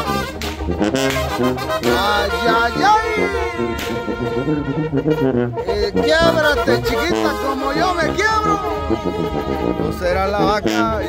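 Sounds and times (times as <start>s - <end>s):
live band music: 0.0s - 11.0s
moving bass line: 0.0s - 11.0s
person singing: 1.8s - 4.5s.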